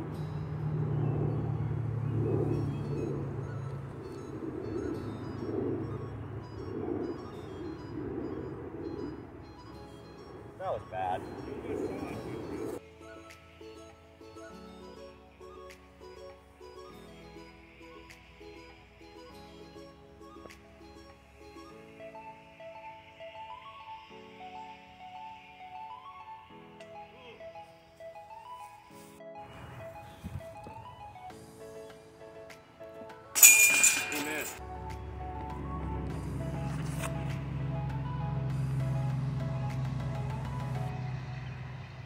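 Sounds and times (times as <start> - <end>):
steady low rumble: 0.0 - 12.8
background music: 0.0 - 41.8
disc hitting metal basket chains: 33.4 - 34.6.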